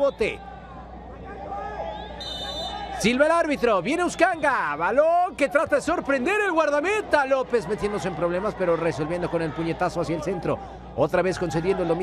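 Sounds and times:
referee's whistle blast: 0:01.9 - 0:03.0.

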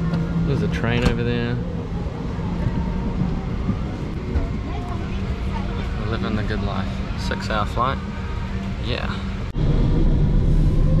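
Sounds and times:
faint passenger voices: 0:00.0 - 0:09.5.

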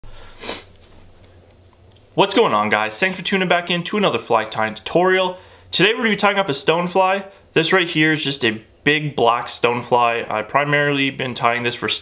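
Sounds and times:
person sniffing: 0:00.1 - 0:00.8.

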